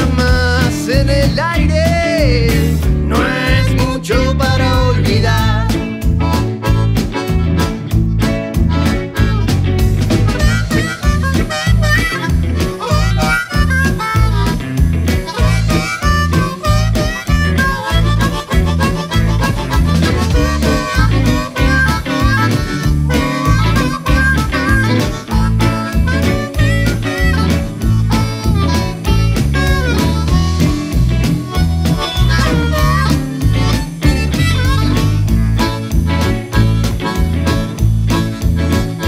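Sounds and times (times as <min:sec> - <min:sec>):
blues band playing: 0:00.0 - 0:39.0
harmonica melody: 0:00.0 - 0:39.0.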